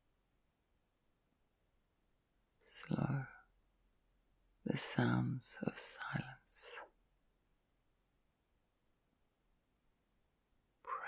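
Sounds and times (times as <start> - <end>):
person whispering: 2.6 - 3.4, 4.7 - 6.9.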